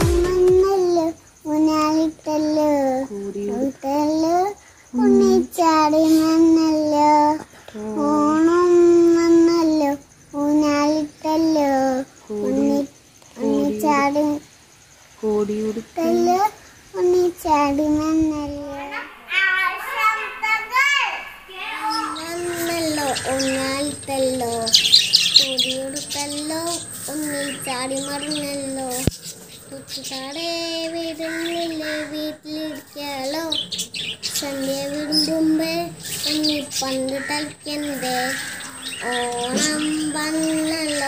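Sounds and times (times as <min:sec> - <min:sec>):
girl singing unaccompanied: 0:00.0 - 0:14.6, 0:15.2 - 0:29.1, 0:29.7 - 0:41.0.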